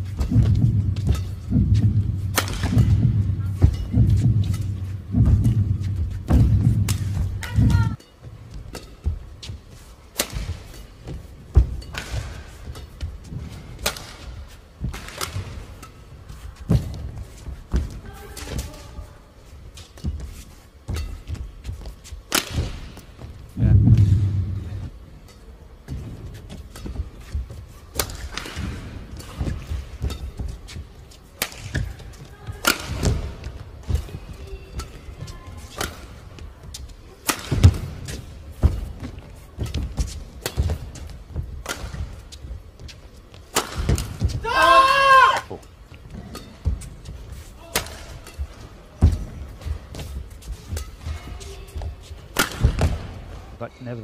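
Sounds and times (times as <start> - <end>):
racket hitting shuttlecock: 0.0 - 13.1, 13.8 - 16.1, 22.3 - 23.1, 26.0 - 44.7, 47.6 - 53.2
heavy low thud: 0.2 - 8.0, 23.6 - 25.0.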